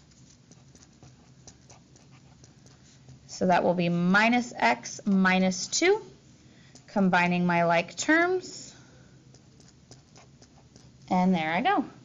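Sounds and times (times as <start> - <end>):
marker writing on paper: 0.0 - 3.2, 9.3 - 11.0.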